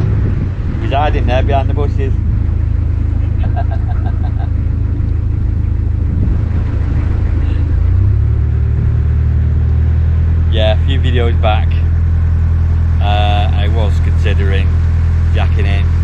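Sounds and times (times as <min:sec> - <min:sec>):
boat diesel engine running: 0:00.0 - 0:16.0.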